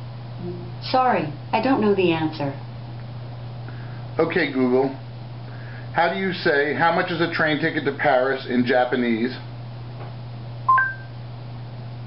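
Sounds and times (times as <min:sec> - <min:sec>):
low steady hum: 0:00.0 - 0:12.0
smart speaker two-tone chime: 0:10.7 - 0:11.1.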